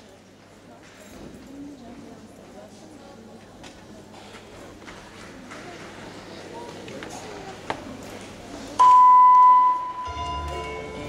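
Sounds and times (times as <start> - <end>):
loud electronic beep: 8.8 - 10.2
gymnastics routine music: 9.7 - 11.0.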